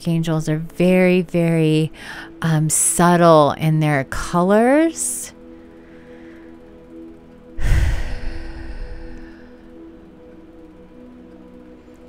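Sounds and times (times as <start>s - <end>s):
soft music of held tones: 0.0s - 12.0s.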